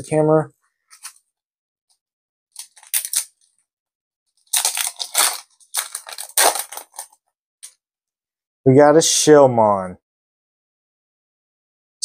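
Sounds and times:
foil wrapper crinkling: 0:02.6 - 0:03.4, 0:04.5 - 0:07.2.

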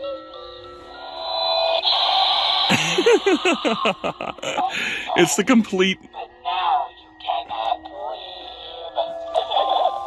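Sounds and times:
low distorted laughing voice: 0:02.7 - 0:05.2.

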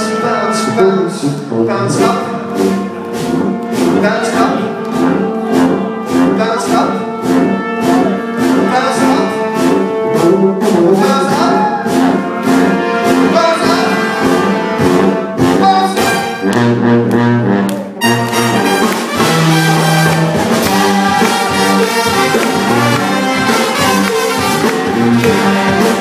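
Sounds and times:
brass band playing: 0:00.0 - 0:26.0.

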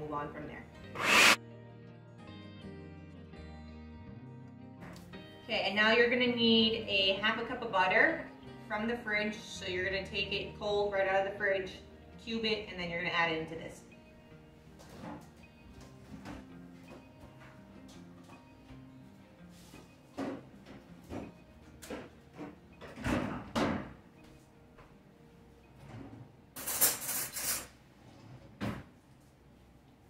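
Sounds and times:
soft background music: 0:00.0 - 0:28.4.

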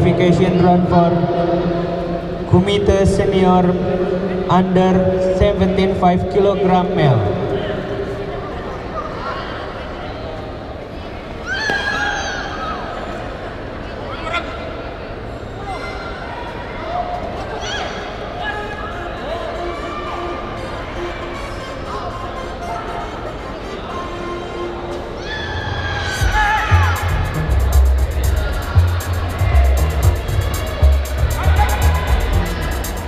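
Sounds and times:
sports hall murmur: 0:00.0 - 0:33.0
high-pitched kiai shout: 0:25.2 - 0:27.3.

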